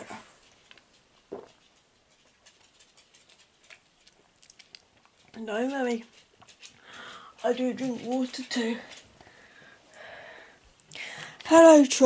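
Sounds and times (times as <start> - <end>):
person swallowing: 1.3 - 1.5.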